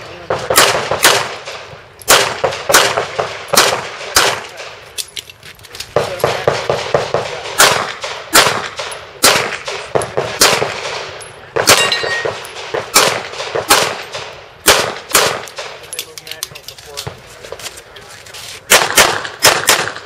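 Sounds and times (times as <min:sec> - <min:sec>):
handgun shots with echo: 0:00.3 - 0:04.8, 0:06.2 - 0:15.9, 0:18.7 - 0:20.0
metallic clangs of steel targets: 0:07.6 - 0:14.4.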